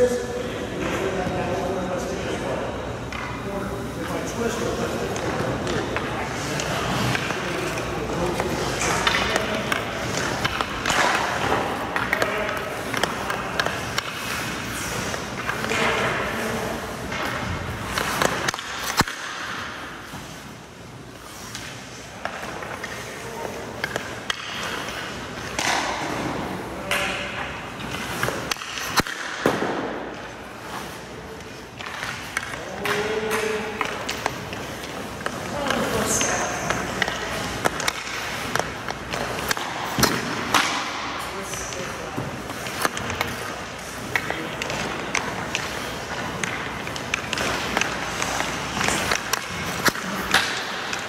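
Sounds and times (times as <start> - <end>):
hockey stick and puck clacks: 4.0 - 51.0
skate blades scraping ice: 4.5 - 26.6, 41.4 - 51.0
skate blades scraping on ice: 41.9 - 51.0.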